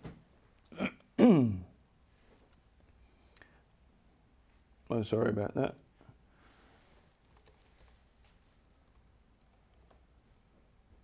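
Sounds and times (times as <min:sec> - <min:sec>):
laptop keys clicking: 0:07.2 - 0:08.0.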